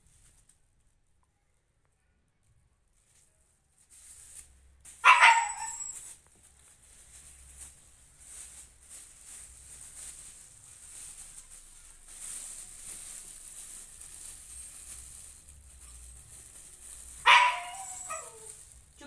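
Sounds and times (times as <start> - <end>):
plastic bag crinkling: 3.8 - 19.0
short pitched cry or bark: 5.0 - 6.0, 17.2 - 18.4.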